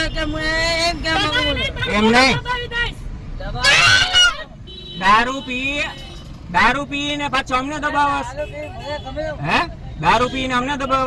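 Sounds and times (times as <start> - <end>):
traffic rumble: 0.0 - 11.0
people shouting in argument: 3.6 - 4.6.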